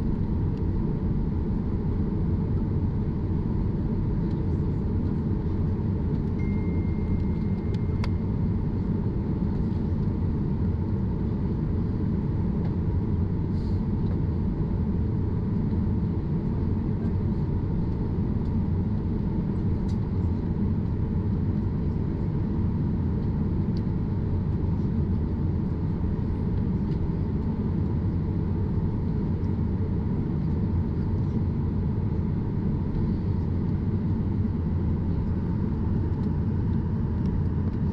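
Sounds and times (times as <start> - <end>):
airliner cabin engine rumble: 0.0 - 37.9
faint steady whine: 0.0 - 37.9.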